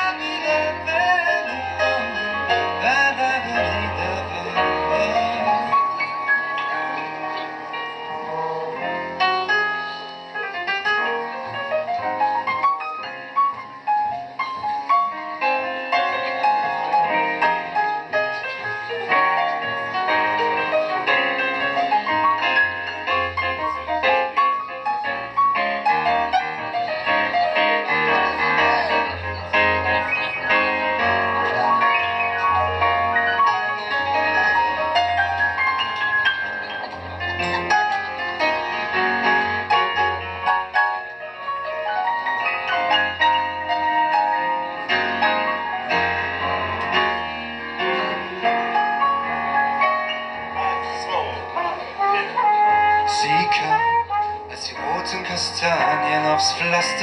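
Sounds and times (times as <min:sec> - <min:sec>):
flugelhorn melody: 0:00.0 - 0:10.2, 0:47.8 - 0:57.0
grand piano playing: 0:00.0 - 0:57.0
upright double bass: 0:00.0 - 0:57.0.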